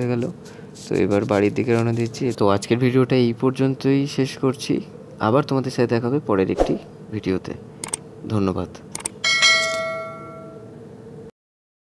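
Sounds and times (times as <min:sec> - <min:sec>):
bright bell chime: 0:09.2 - 0:10.7.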